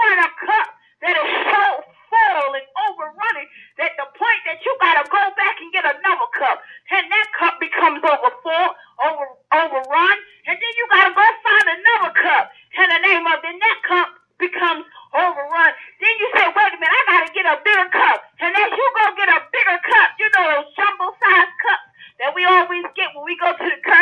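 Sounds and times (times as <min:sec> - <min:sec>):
preacher talking: 0:00.0 - 0:24.0.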